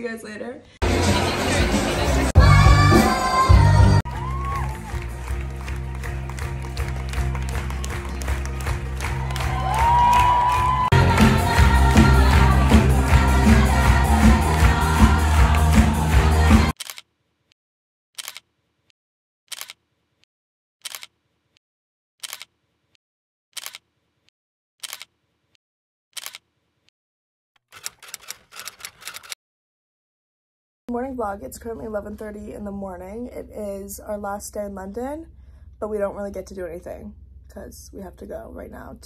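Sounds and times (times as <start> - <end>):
live band and singers: 0.8 - 4.0, 10.9 - 16.7
audience cheering and clapping: 0.9 - 16.8.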